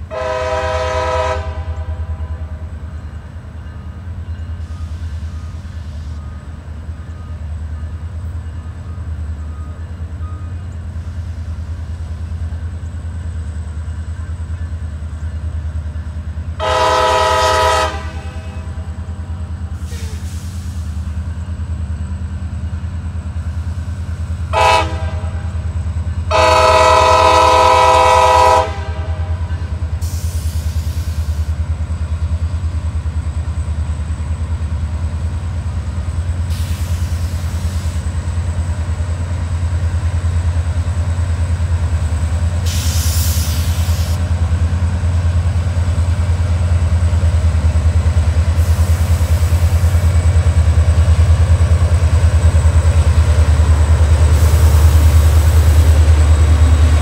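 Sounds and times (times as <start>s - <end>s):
locomotive air horn blasts: 0.1s - 2.7s, 16.6s - 19.0s, 24.5s - 25.7s, 26.3s - 31.3s.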